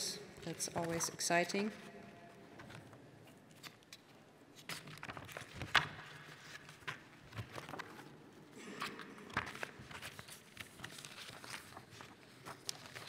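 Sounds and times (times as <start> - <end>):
paper rustling: 2.4 - 13.0.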